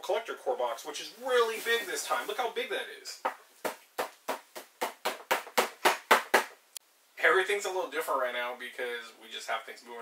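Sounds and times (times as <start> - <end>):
rapid hand slaps: 3.2 - 6.6.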